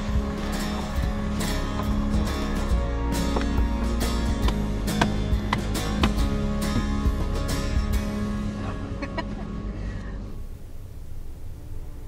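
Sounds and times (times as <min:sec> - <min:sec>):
steady low rumble: 0:00.0 - 0:12.0.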